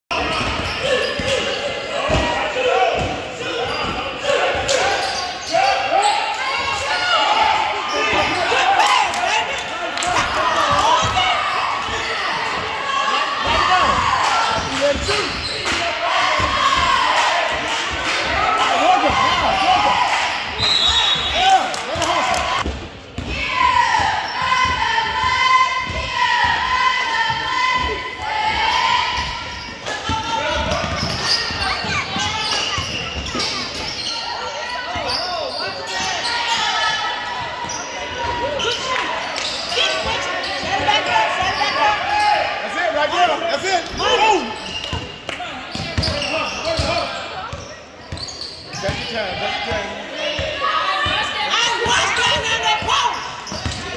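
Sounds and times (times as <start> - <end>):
voices calling out in a gym: 0.0 - 53.9.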